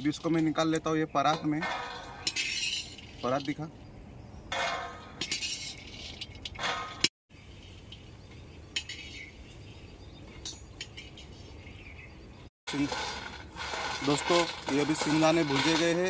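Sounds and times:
peanuts rattling on metal: 0.0 - 3.7, 12.7 - 16.0.

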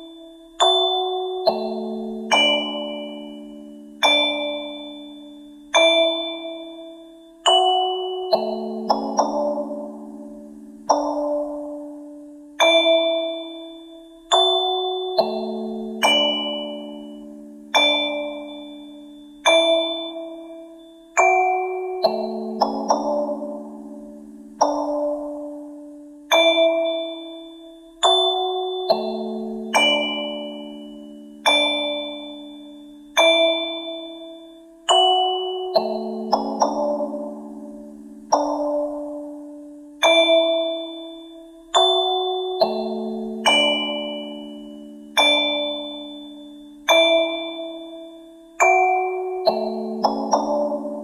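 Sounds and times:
bell-like chiming lullaby: 0.0 - 51.0.

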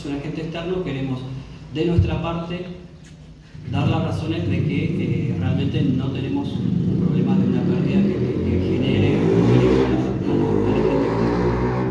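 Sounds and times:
man speaking into microphone: 0.0 - 3.0, 3.6 - 11.5
low rumble: 3.6 - 11.9.

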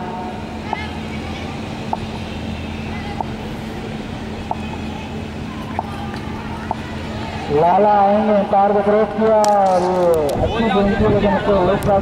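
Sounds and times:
outdoor background noise: 0.0 - 12.0
steady low hum: 0.0 - 12.0.

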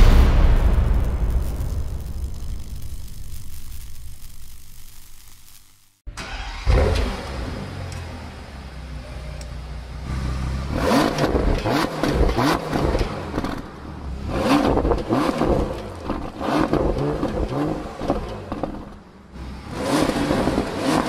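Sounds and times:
car engine starting and revving: 6.1 - 21.0.

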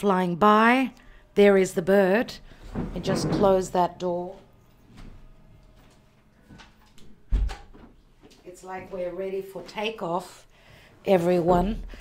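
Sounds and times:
door closing with heavy thud: 7.2 - 7.9.

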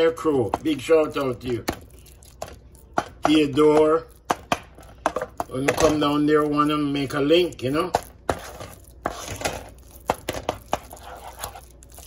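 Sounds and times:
wooden spoon scraping a pot: 5.0 - 12.0.

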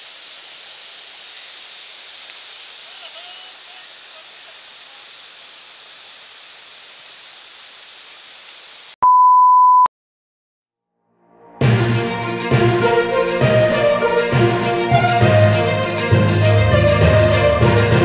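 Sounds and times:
floodwater rushing: 0.0 - 9.0.

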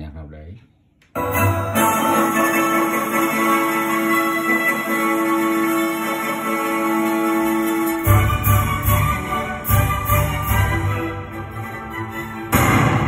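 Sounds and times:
orchestral music through speaker: 1.2 - 13.0.

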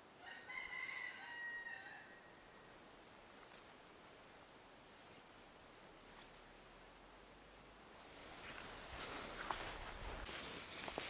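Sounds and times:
rooster crowing: 0.2 - 2.3.

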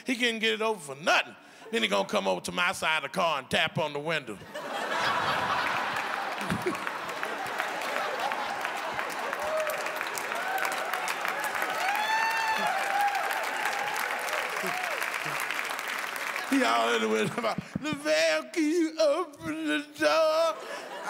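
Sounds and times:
audience laughing: 4.4 - 10.3, 14.5 - 18.1, 20.2 - 21.0
audience clapping: 4.8 - 18.4
whoops and shouts: 9.2 - 15.2.

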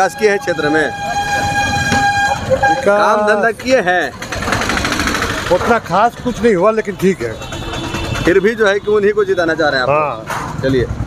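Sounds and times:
vehicle horn: 0.0 - 3.2, 6.8 - 9.4
low traffic rumble: 0.0 - 11.0.

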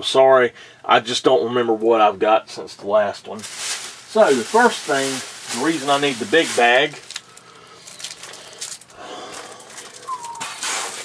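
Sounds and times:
plastic wrapping rustling and crinkling: 3.3 - 11.0.

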